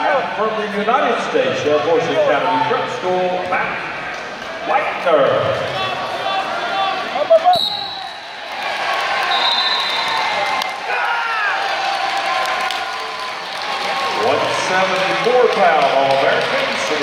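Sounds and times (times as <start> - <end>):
voices shouting in echoing hall: 3.5 - 17.0
referee's whistle: 7.4 - 8.3, 9.2 - 10.3.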